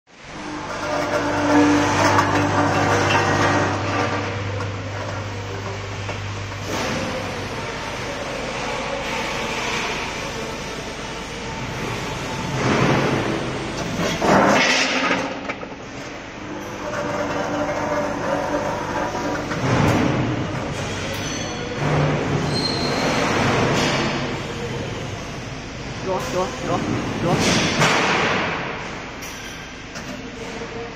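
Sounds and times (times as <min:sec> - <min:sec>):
weighing machine humming: 0:00.1 - 0:30.9.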